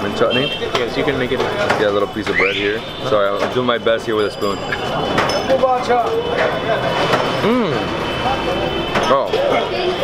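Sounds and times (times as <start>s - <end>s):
busy street noise: 0.0s - 10.0s
man humming while chewing: 7.4s - 7.9s.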